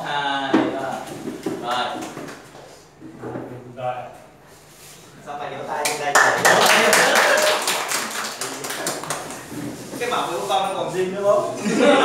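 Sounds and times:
group clapping: 0:05.8 - 0:09.6.

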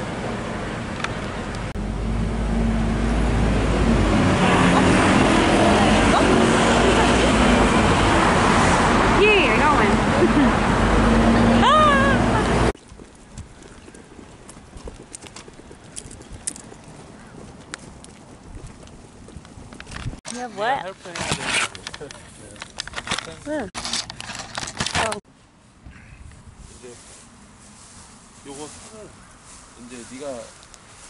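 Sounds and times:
deep vehicle rumble: 0:00.0 - 0:20.2.

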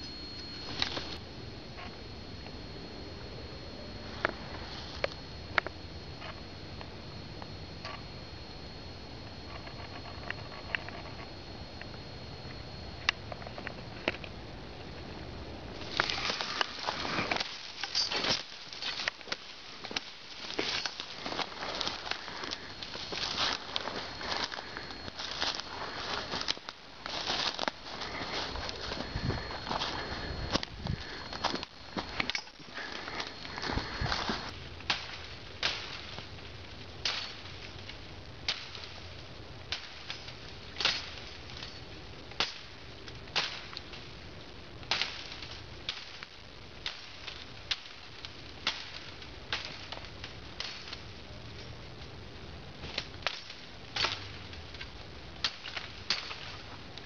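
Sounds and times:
leaves crunching underfoot: 0:00.0 - 0:01.2, 0:15.7 - 0:36.2.

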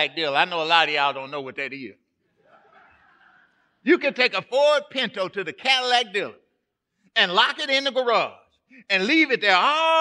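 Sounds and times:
people chuckling: 0:02.4 - 0:03.8.

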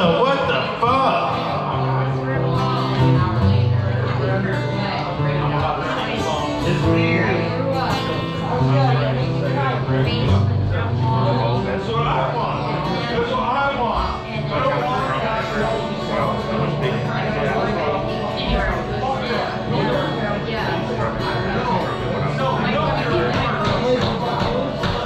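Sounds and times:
acoustic string instruments: 0:00.0 - 0:25.0
people talking: 0:00.0 - 0:25.0.

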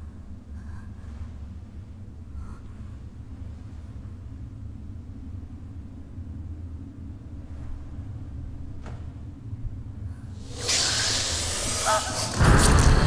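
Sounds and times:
low rumble: 0:00.0 - 0:13.0
loud rushing hiss: 0:10.4 - 0:13.0.

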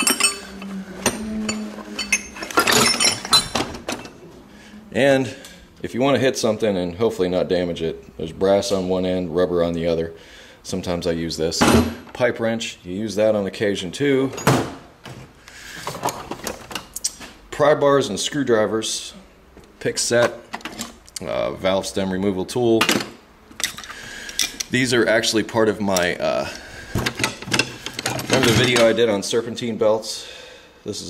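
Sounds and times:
metal hand tools clinking: 0:00.0 - 0:04.2.

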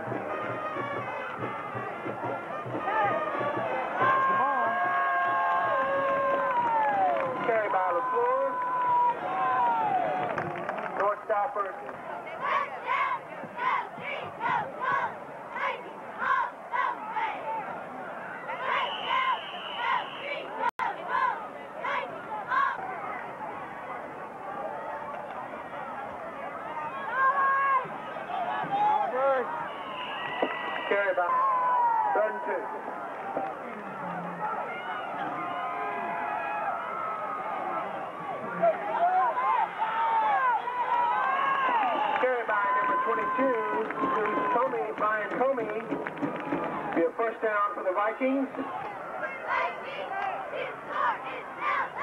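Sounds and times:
crowd shouting and talking: 0:00.0 - 0:52.0
crowd chanting: 0:12.1 - 0:23.3, 0:48.6 - 0:52.0.

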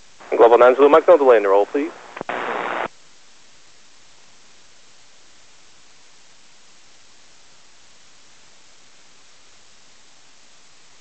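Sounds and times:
faint receiver hiss: 0:00.0 - 0:03.0
faint radio clicks: 0:00.2 - 0:02.9
radio static burst: 0:00.2 - 0:02.9.

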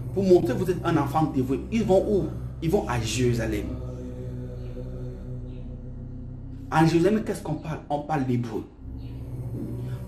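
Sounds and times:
meditative drone music: 0:00.0 - 0:10.0.

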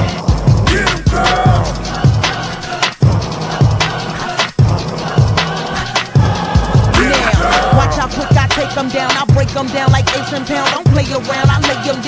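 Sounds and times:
deep kick drums: 0:00.0 - 0:02.4, 0:06.2 - 0:08.7.

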